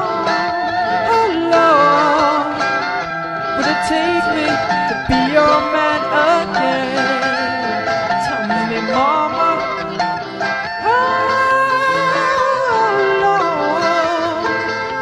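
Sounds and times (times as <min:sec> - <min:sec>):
guitar melody with bent notes: 0:00.0 - 0:15.0.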